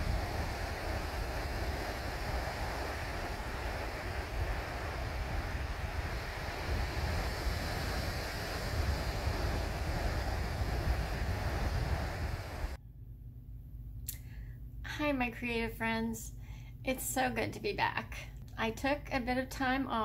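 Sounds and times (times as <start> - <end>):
ocean surf on beach: 0.0 - 12.8
wind buffeting microphone: 0.0 - 12.8.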